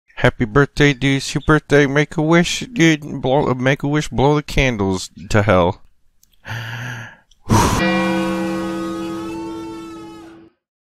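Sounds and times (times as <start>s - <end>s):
voiced breath drawn in: 6.4s - 7.8s
noisy burst of blowing: 7.5s - 10.2s
sustained musical chord: 7.5s - 10.5s.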